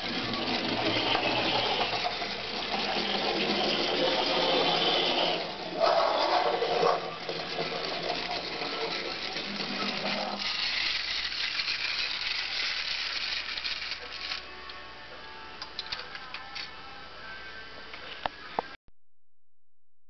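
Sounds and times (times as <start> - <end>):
clockwork toy gears rattling: 0.0 - 14.5.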